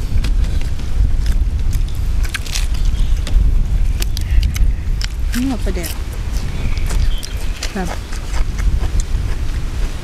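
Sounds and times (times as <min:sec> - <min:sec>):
lettuce leaf bitten and chewed: 0:00.0 - 0:10.0
wind buffeting microphone: 0:00.0 - 0:10.0.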